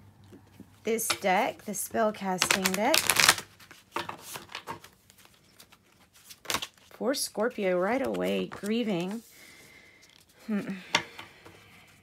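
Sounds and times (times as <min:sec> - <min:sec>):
person humming: 0:10.4 - 0:11.0.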